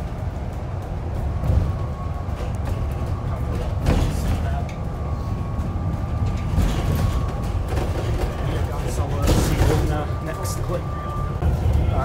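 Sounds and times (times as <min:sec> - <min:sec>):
bus engine and road rumble: 0:00.0 - 0:12.0.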